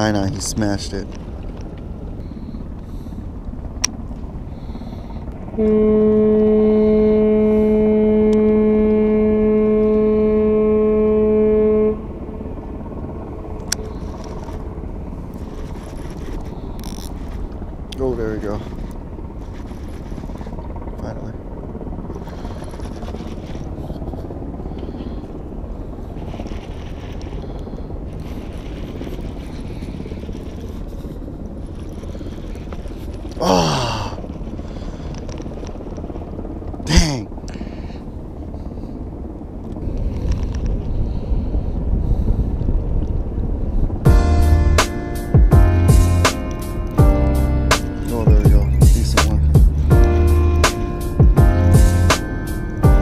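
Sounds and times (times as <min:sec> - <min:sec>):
wind: 0:00.0 - 0:53.0
music with steady beat: 0:44.1 - 0:53.0.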